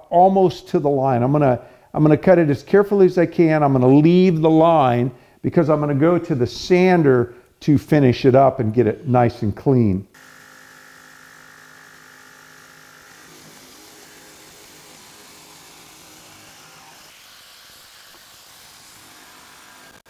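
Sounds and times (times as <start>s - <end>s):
jigsaw cutting wood: 10.2s - 20.0s.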